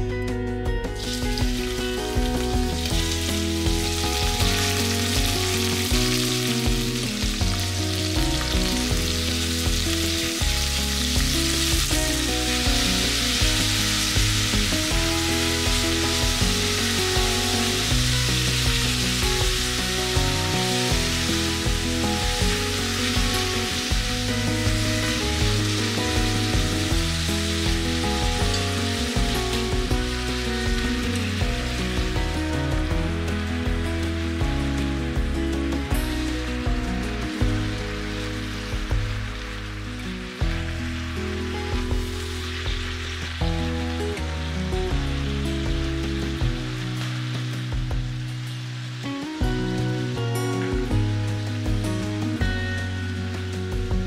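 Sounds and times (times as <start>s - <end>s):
background music: 0.0s - 54.0s
meat and peppers sizzling: 0.0s - 54.0s.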